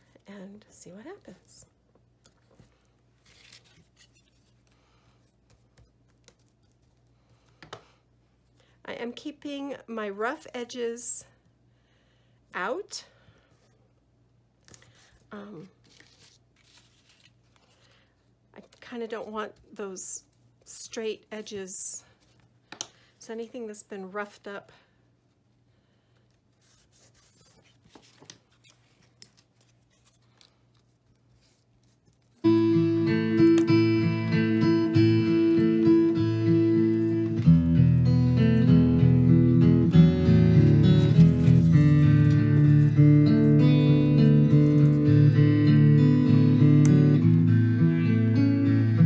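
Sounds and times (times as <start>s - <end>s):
paper rustling: 2.3s - 7.6s, 14.6s - 18.0s, 26.5s - 32.5s, 40.6s - 45.2s
brush pressing paper: 26.5s - 28.2s
paper rustling and clicks: 27.7s - 32.4s.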